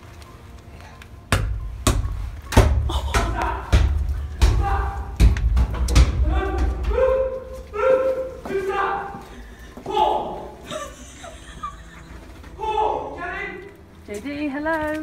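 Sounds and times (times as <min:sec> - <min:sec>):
ball bouncing with heavy thuds: 0:01.3 - 0:07.6
voices: 0:02.9 - 0:05.3, 0:06.0 - 0:15.0.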